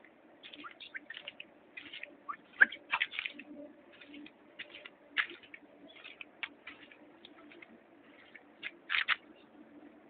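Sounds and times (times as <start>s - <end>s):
terns calling: 0.4s - 6.6s.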